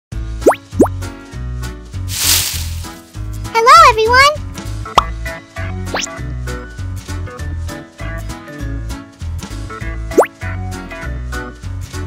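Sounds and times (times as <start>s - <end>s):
rising pop sound effects: 0.4s - 1.0s, 5.9s - 6.2s, 10.1s - 10.4s.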